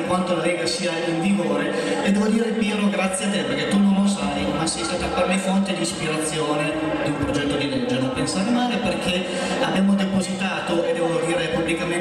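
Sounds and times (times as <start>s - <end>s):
man speaking over public address: 0.0s - 12.0s.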